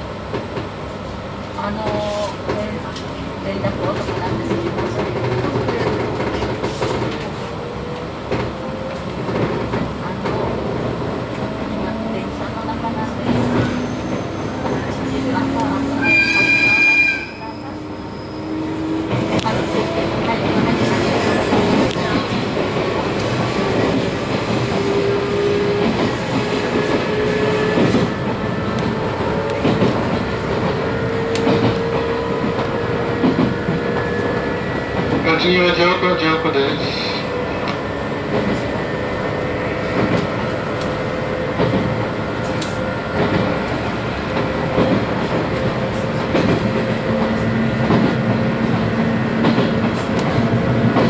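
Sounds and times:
train running noise inside car: 0.0s - 51.0s.

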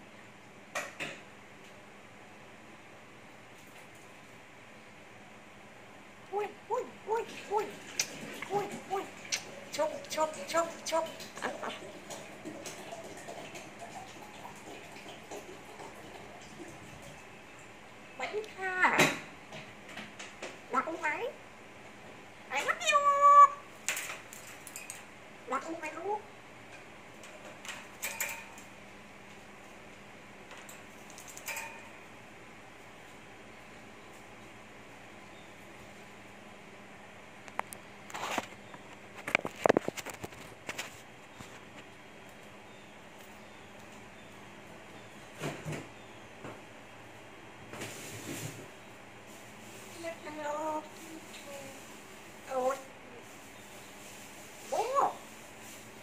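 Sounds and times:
parrot calling: 22.5s - 23.7s
parrot claws rattling wire cage: 27.9s - 28.7s, 30.7s - 32.0s.

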